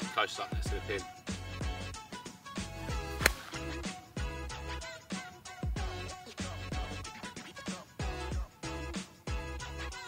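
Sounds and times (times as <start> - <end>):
music with bass drum beat: 0.5 - 2.0, 2.6 - 10.0
golf club striking ball: 3.0 - 3.8.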